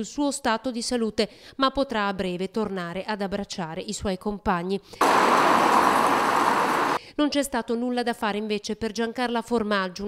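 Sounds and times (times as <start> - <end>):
cars hissing on street: 5.0 - 7.0.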